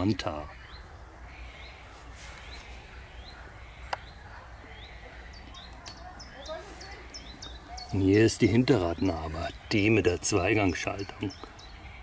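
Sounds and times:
high bird chirps: 0.5 - 12.0.

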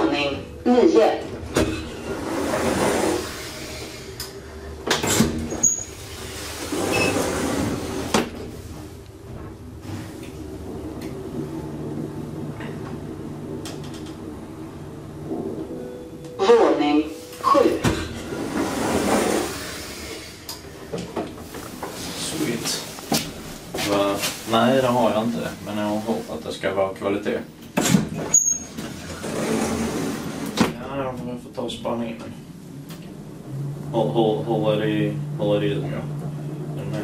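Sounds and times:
elevator humming: 0.0 - 37.0
elevator doors sliding open: 0.2 - 26.6, 27.7 - 31.3, 32.0 - 37.0
elevator clunks: 0.9 - 16.6, 17.2 - 22.0.

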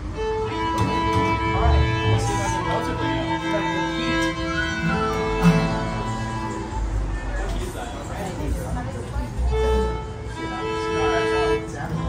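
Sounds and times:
acoustic guitar: 0.0 - 12.0
fiddle: 0.0 - 12.0
upright bass: 1.2 - 3.0.

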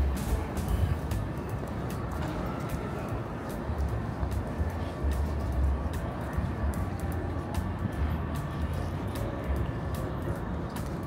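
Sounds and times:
low traffic rumble: 0.0 - 11.0
music playing: 0.0 - 11.0.

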